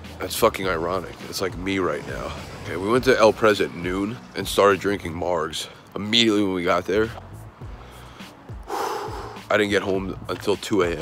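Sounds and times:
man talking: 0:00.2 - 0:07.2, 0:09.4 - 0:11.0
man breathing in sharply: 0:07.7 - 0:09.5.

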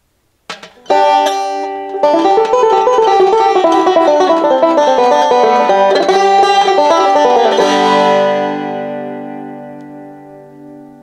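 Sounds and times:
banjo picking a fast reel: 0:00.5 - 0:09.3.

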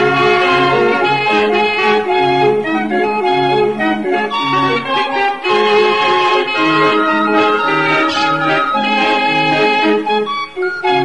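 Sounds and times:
street barrel organ playing: 0:00.0 - 0:11.0.

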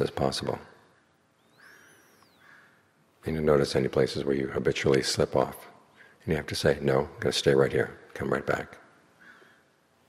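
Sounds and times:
faint bird whistle: 0:01.3 - 0:02.9.

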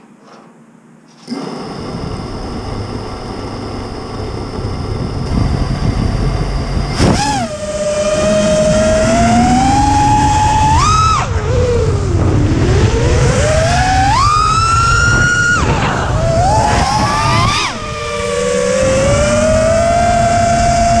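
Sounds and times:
drone motors whining: 0:01.1 - 0:21.0
propeller wash rumble: 0:01.2 - 0:21.0.

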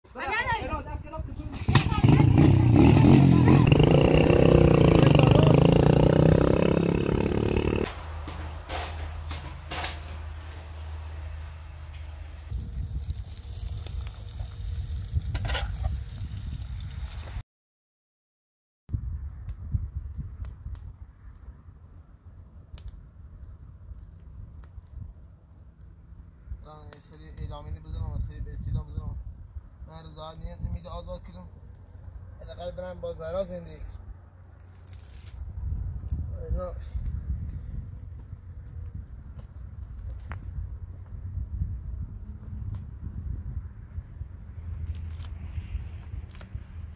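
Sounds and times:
people talking: 0:00.1 - 0:04.1, 0:04.7 - 0:06.2.

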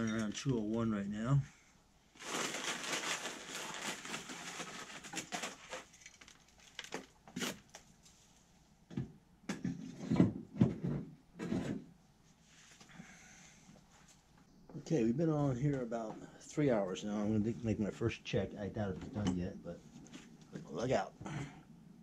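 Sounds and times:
wood chips pouring from bag: 0:02.2 - 0:06.9.

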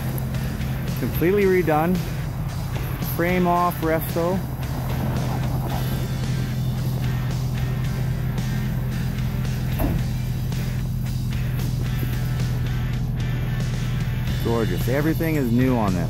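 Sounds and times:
background music: 0:00.0 - 0:16.0
car engine idling: 0:00.0 - 0:16.0.

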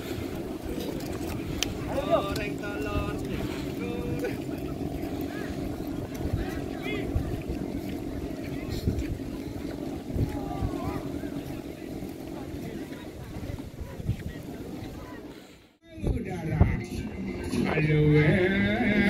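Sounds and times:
wind buffeting microphone: 0:00.0 - 0:18.5
crowd of voices: 0:00.0 - 0:19.0
distant shouts: 0:09.8 - 0:11.7.

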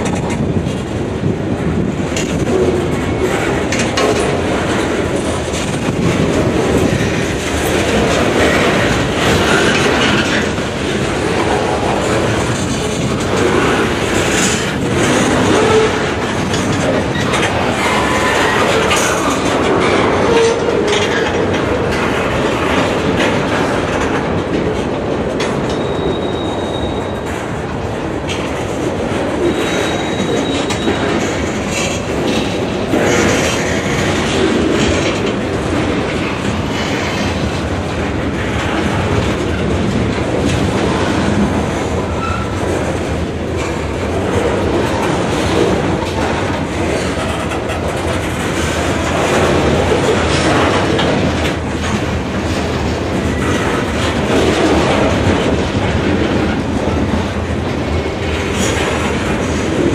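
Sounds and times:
train wheels rumbling on rail: 0:00.0 - 0:59.9
wheels clacking over rail joints: 0:00.0 - 0:59.9
high wheel squeal: 0:25.7 - 0:27.3, 0:29.4 - 0:31.2, 0:42.1 - 0:42.5.

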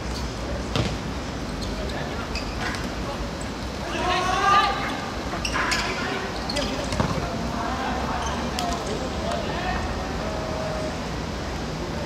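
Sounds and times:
ball thuds on hard court: 0:00.7 - 0:01.0, 0:06.9 - 0:07.2.

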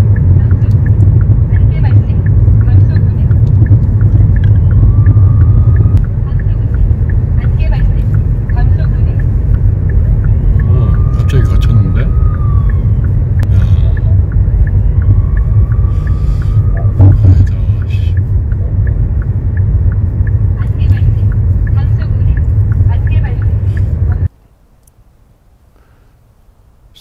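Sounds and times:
faint regular ticking: 0:00.0 - 0:25.0
car road noise rumble: 0:00.0 - 0:27.0.

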